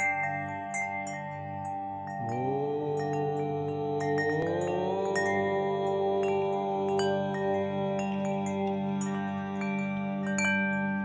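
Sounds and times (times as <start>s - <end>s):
chimes ringing: 0.0s - 11.0s
steady low drone: 2.2s - 10.9s.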